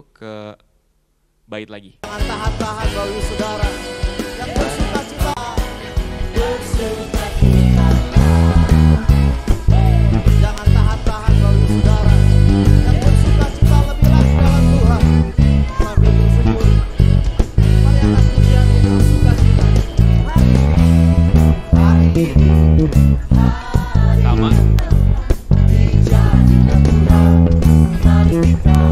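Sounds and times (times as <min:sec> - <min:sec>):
worship band playing: 0:02.0 - 0:28.9
electric bass descending run: 0:07.3 - 0:28.9.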